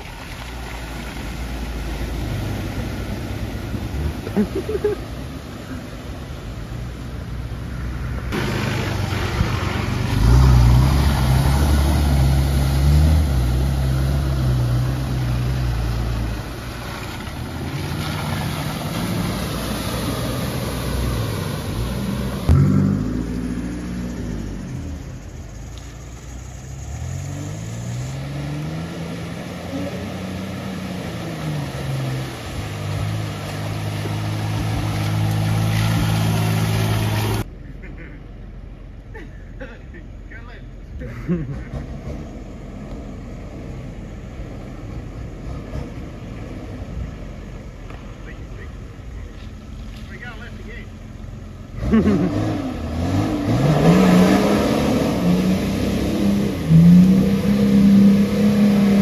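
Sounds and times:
off-road engines revving in mud: 0.0s - 38.4s, 39.1s - 59.0s.

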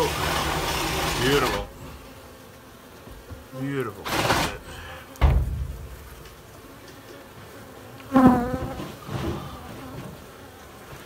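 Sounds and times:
heavy thump on wooden joists: 4.1s - 6.2s, 8.2s - 10.3s.

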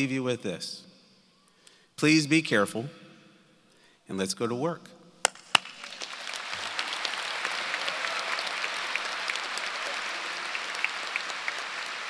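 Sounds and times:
audience applauding: 5.4s - 12.0s.

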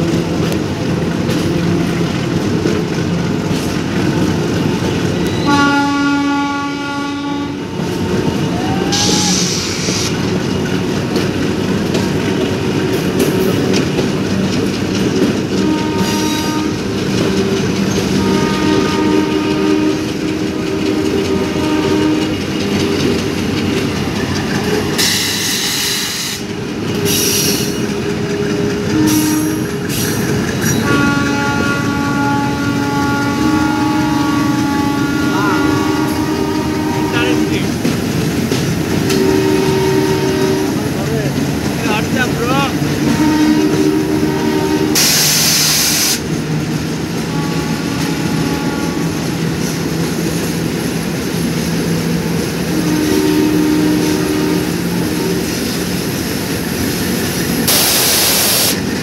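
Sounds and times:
train coaches rumbling over rails: 0.0s - 59.0s
diesel locomotive horn: 4.1s - 10.4s, 15.4s - 23.3s, 27.0s - 37.8s, 38.6s - 41.2s, 41.8s - 46.3s, 47.1s - 50.5s, 51.3s - 55.9s, 57.6s - 58.8s.

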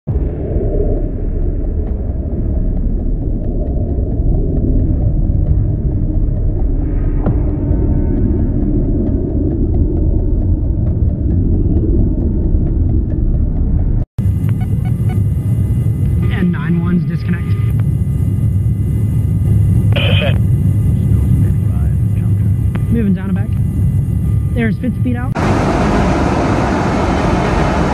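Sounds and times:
jet engines rumbling: 0.1s - 27.9s
airflow past fuselage: 25.4s - 27.9s.

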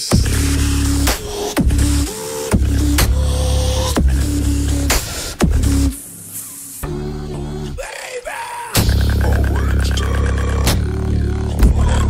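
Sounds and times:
vocal bass drone: 0.0s - 6.1s, 6.8s - 12.0s
pitched vocal tones: 0.2s - 12.0s
snare-like vocal clicks: 1.0s - 1.6s, 3.0s - 3.3s, 4.9s - 5.3s, 8.7s - 11.0s.

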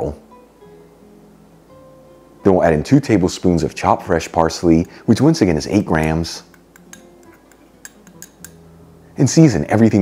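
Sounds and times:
light glass clinks: 6.7s - 8.6s.

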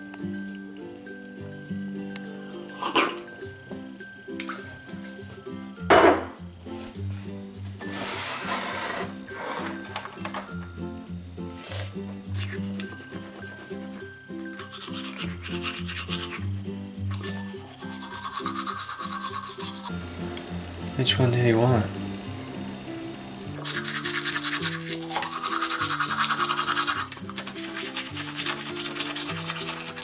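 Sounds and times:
scratchy rubbing: 7.9s - 9.7s, 14.6s - 16.4s, 17.1s - 19.9s, 23.6s - 30.0s
toothbrush scrubbing teeth: 11.6s - 13.8s, 14.5s - 20.0s, 23.6s - 30.0s.

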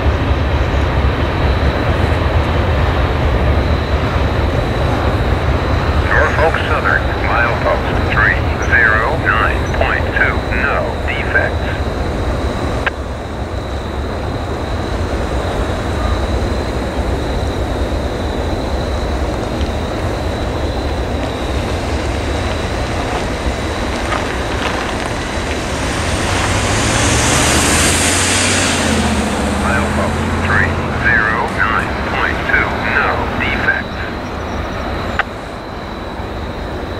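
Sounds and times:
low rumble: 0.0s - 35.2s
automated voice over radio: 6.0s - 11.8s, 29.6s - 34.2s
radio click: 6.1s - 11.6s, 30.4s - 34.0s
vehicle driving past: 24.3s - 32.8s.

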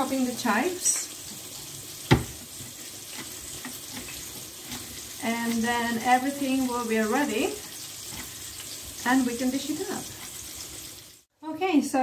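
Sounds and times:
fish sizzling in a pan: 0.0s - 11.3s.

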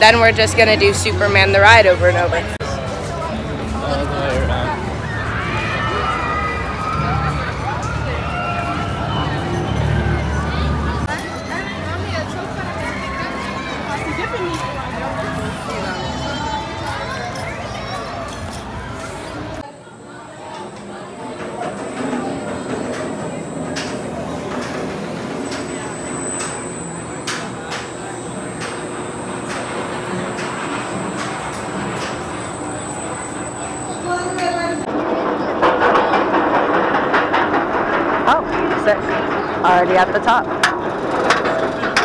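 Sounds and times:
voices: 0.0s - 35.4s
roller coaster train running: 0.0s - 42.0s.

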